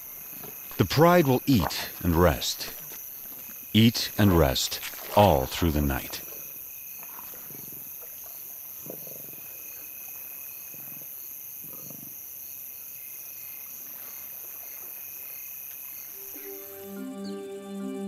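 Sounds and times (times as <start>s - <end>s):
night insects chirping: 0.0s - 18.0s.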